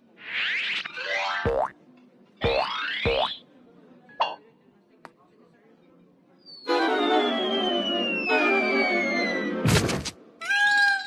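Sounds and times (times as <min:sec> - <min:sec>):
cartoon boing with falling pitch: 0:01.2 - 0:01.7.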